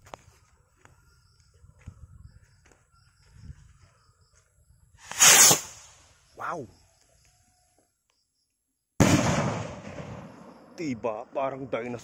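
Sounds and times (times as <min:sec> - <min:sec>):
firework bang with echo: 0:09.0 - 0:10.4.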